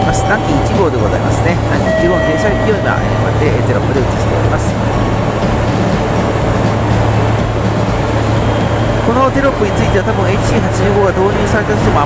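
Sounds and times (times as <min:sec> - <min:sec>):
steady mechanical rumble and hum: 0:00.0 - 0:12.0.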